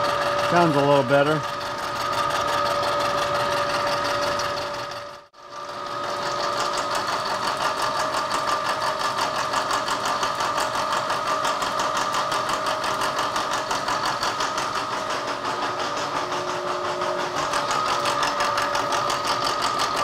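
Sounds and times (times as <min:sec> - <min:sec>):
milling machine cutting steel: 0:00.0 - 0:20.0.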